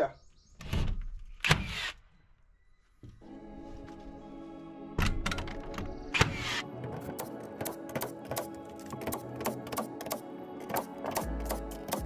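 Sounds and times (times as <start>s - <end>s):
nailer crack: 6.2s - 12.0s.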